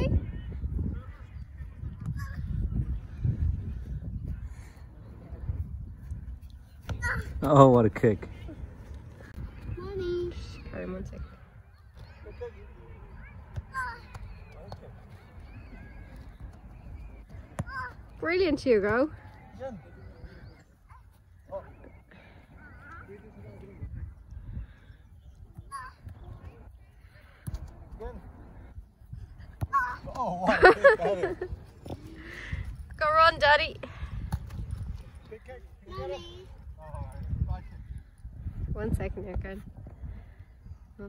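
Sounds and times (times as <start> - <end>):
wind rumbling on microphone: 0.0 - 7.4, 22.7 - 30.1, 31.0 - 41.0.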